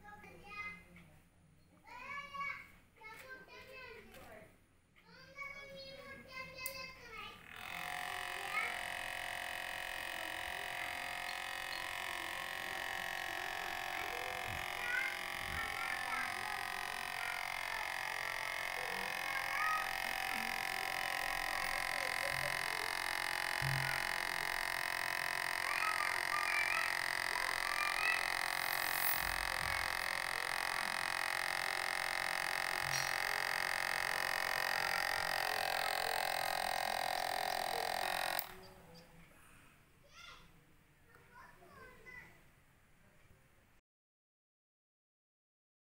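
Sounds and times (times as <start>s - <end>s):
electric fan motor whirring: 6.6s - 38.8s.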